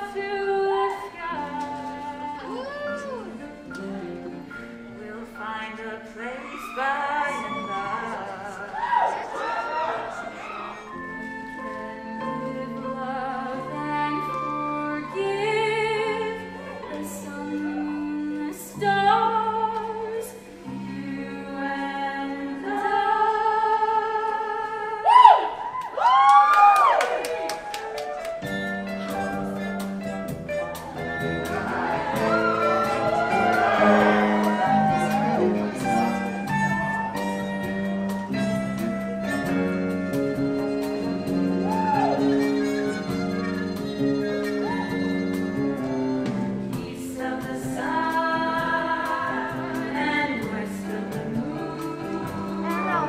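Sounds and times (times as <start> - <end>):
small band playing: 0.0 - 5.4, 7.3 - 21.1, 25.6 - 53.0
women singing in harmony: 0.0 - 9.8, 11.0 - 25.1, 45.9 - 53.0.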